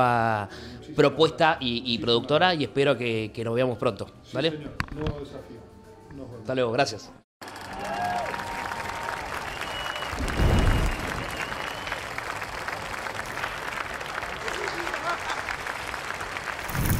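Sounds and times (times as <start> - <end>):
audience applauding: 7.4 - 16.9
whistles: 8.8 - 12.2.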